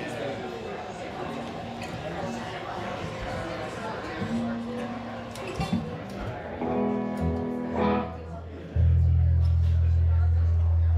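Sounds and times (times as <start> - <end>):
guitar notes: 6.6 - 9.7.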